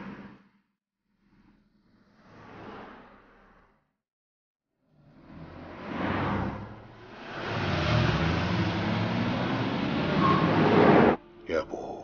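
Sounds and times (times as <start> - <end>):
cars driving past: 4.9 - 11.2.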